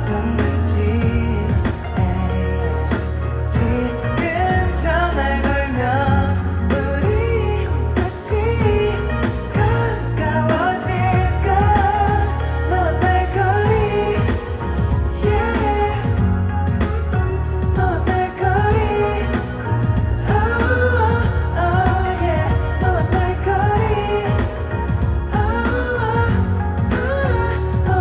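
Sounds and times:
bass: 0.0s - 28.0s
man singing: 0.0s - 28.0s.

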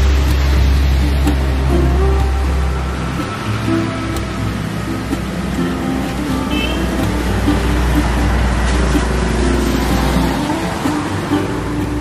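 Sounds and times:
background music: 0.0s - 12.0s
motorcycle passing on wet road: 0.0s - 12.0s
street traffic: 0.0s - 12.0s.

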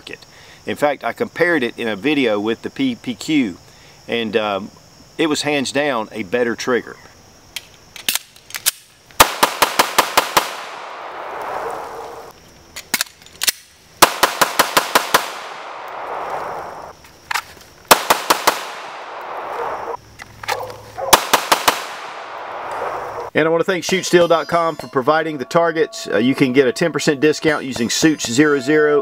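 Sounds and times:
pistol rapid shots with echo: 9.2s - 11.4s, 14.0s - 16.2s, 17.9s - 19.4s, 21.1s - 22.6s.

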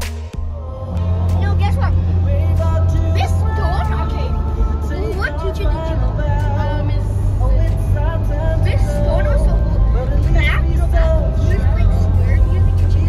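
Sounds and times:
car driving rumble inside cabin: 1.1s - 13.0s
person talking: 8.6s - 13.0s.

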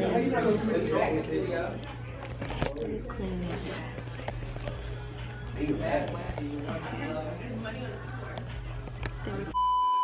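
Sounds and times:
faint background voices: 0.0s - 9.6s.

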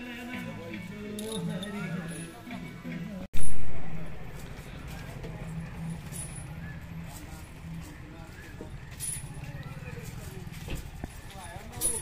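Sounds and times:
metallic clinks of chains: 1.2s - 2.4s, 5.9s - 6.6s, 8.9s - 9.5s, 11.7s - 12.0s.

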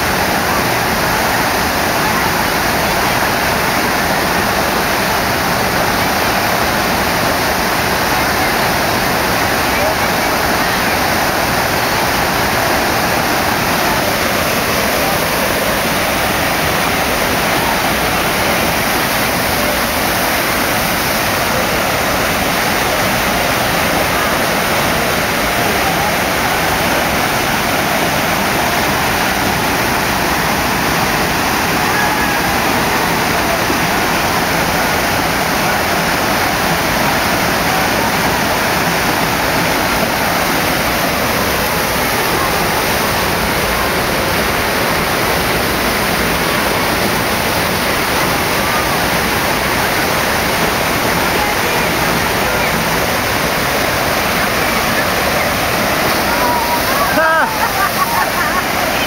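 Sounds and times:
water rushing: 0.0s - 59.0s.

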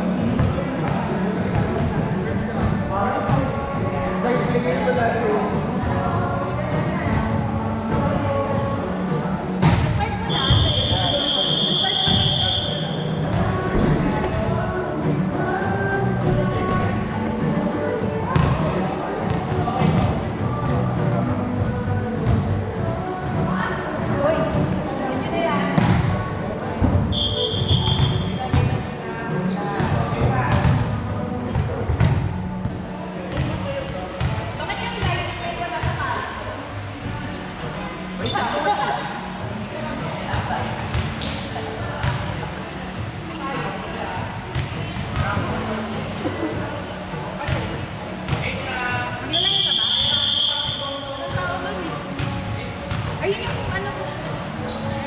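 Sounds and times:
referee whistle blast: 10.3s - 12.8s, 27.1s - 28.2s, 49.3s - 50.8s.

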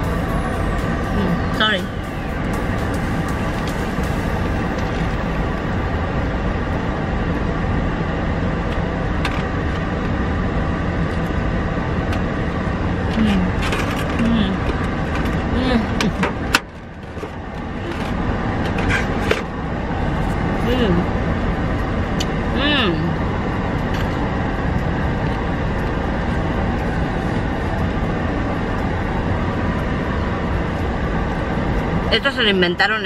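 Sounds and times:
car engine idling: 0.0s - 33.0s.

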